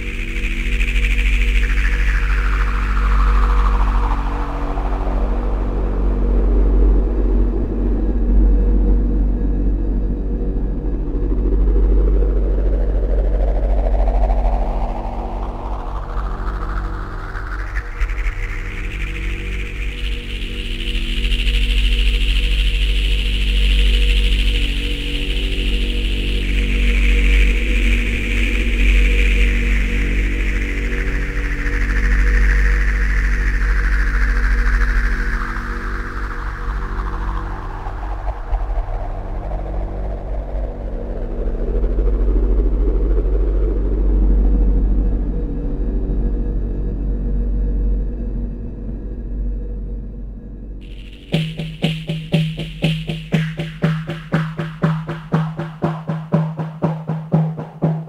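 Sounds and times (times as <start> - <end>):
heavy low drone: 0.0 - 58.0
filtered noise rising and falling: 50.8 - 58.0.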